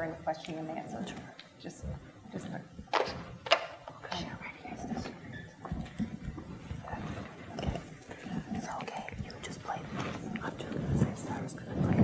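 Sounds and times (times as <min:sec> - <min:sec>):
murmured talk and whispering: 0:03.9 - 0:12.0.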